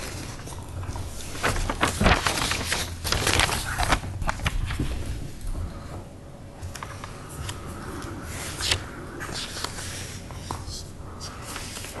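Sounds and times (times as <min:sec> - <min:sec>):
paper rustling: 0:00.0 - 0:05.4, 0:06.6 - 0:12.0
low room hum: 0:00.0 - 0:12.0.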